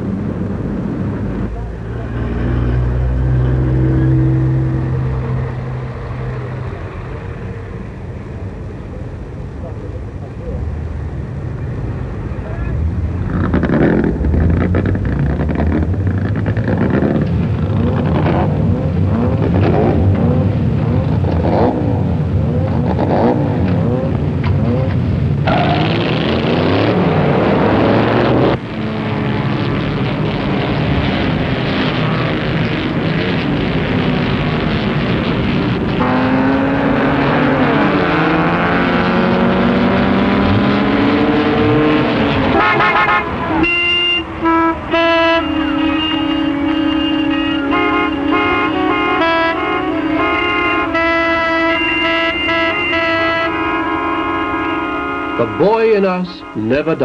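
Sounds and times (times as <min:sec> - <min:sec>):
racing car engines revving: 0:00.0 - 0:57.0
horn-like toots: 0:36.0 - 0:39.5, 0:41.8 - 0:57.0.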